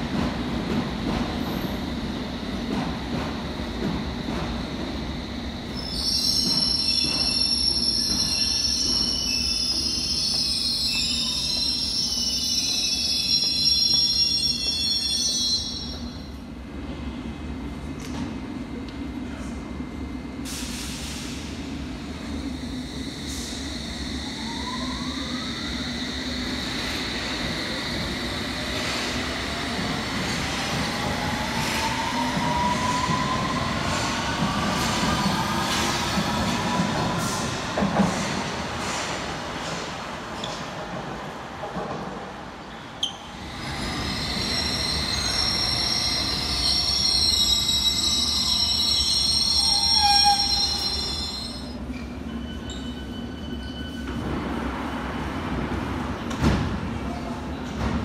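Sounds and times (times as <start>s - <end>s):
train running hum: 0.0s - 5.8s
train wheel squeal: 5.6s - 16.4s, 22.6s - 39.8s, 42.8s - 54.6s.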